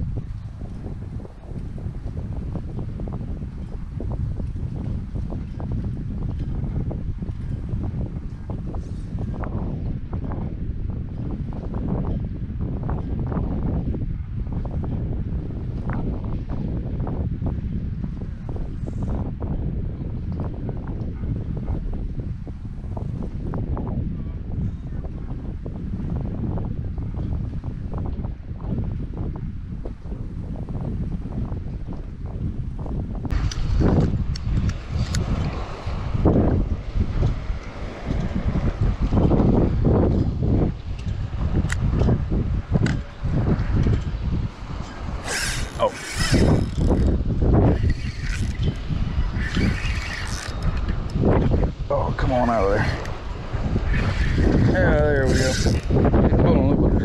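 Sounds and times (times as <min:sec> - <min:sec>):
wind buffeting microphone: 0:00.0 - 0:57.0
gear handling clicks and knocks: 0:49.4 - 0:51.0.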